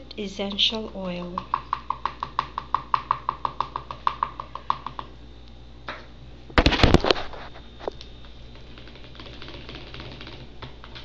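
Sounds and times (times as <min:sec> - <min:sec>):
oil dripping ticks: 0:00.4 - 0:05.1.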